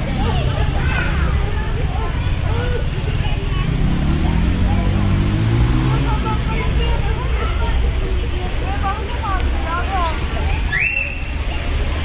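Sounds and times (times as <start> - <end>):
low traffic rumble: 0.0 - 12.0
people's voices: 0.0 - 12.0.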